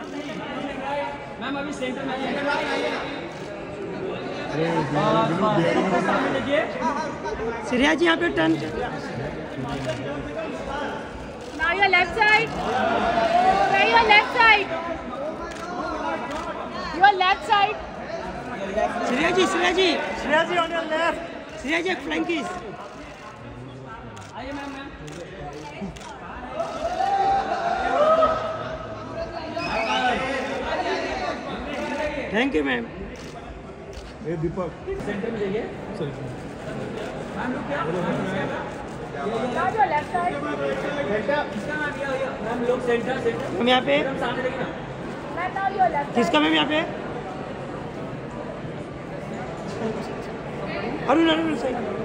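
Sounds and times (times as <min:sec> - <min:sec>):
voices talking and calling out: 0:00.0 - 0:52.0.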